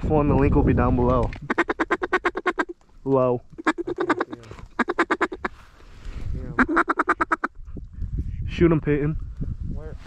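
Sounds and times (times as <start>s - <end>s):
duck call quacking: 1.4s - 2.8s, 3.6s - 5.5s, 6.6s - 7.6s.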